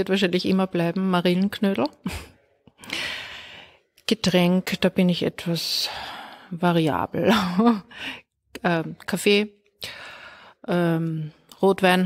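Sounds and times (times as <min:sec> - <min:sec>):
person breathing in: 0:02.8 - 0:03.8, 0:07.9 - 0:08.3, 0:09.8 - 0:10.6.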